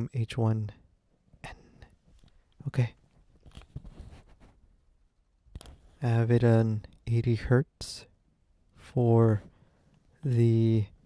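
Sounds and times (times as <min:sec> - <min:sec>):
handling clicks and rubbing: 0:02.1 - 0:04.6.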